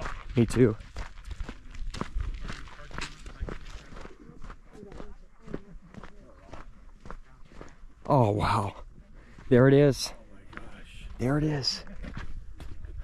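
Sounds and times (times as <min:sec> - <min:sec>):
faint voices of hikers: 0:00.0 - 0:13.0
footsteps on gravelly dirt: 0:00.0 - 0:13.0.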